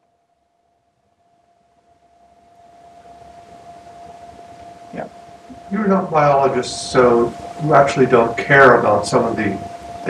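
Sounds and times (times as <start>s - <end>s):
faint steady hum: 0.0s - 10.0s
soft hiss: 0.0s - 10.0s.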